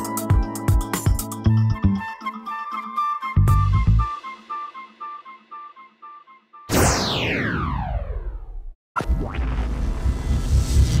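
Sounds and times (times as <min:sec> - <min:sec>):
flute-like melody: 0:00.0 - 0:06.7
sweep falling in pitch: 0:06.7 - 0:08.6
sudden hit: 0:06.7 - 0:11.0.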